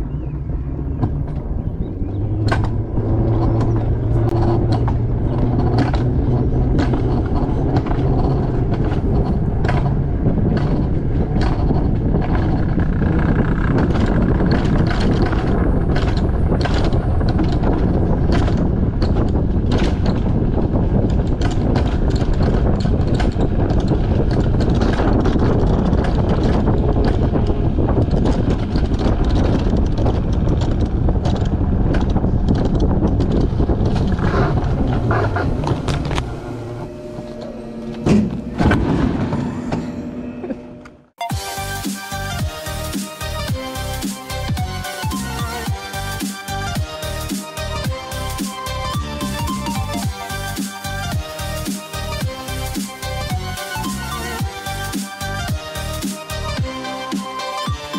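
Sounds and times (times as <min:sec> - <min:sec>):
coaster sled rolling rumble: 0:00.0 - 0:57.9
low hum: 0:00.0 - 0:57.9
wheels clicking and rattling: 0:00.0 - 0:57.9.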